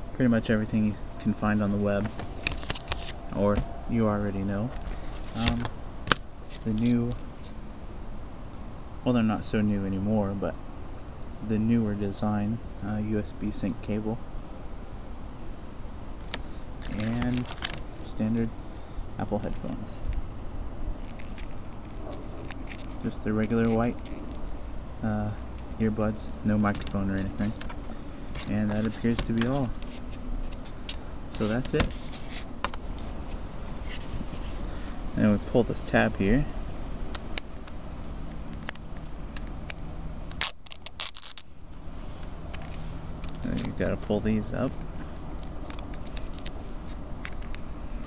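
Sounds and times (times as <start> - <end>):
soft handling rustling: 0.6 - 7.5, 16.2 - 20.3, 20.9 - 36.7, 40.7 - 48.0
plastic packaging crinkling: 2.0 - 3.4, 16.8 - 18.1, 21.0 - 24.4, 37.2 - 41.5, 44.8 - 48.0.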